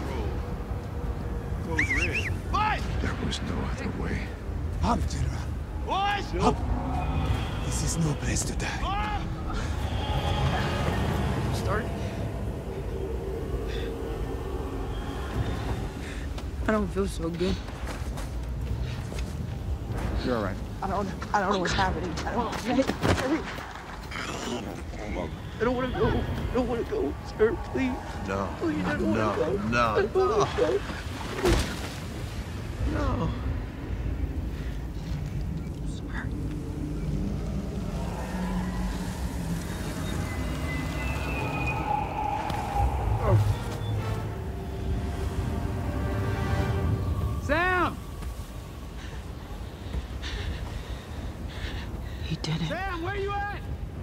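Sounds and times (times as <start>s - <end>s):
low rumble: 0.0s - 22.7s, 32.2s - 52.4s
sustained film score notes: 0.0s - 54.0s.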